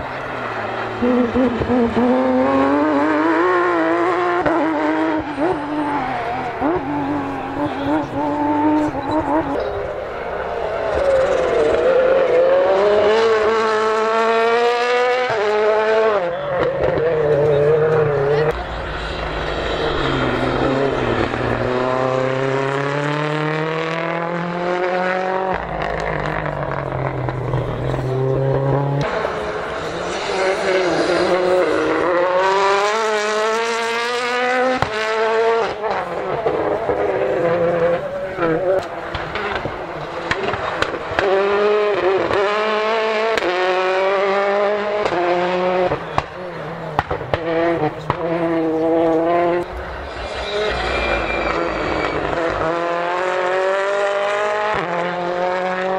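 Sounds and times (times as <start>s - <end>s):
rally cars accelerating past: 0.0s - 55.9s.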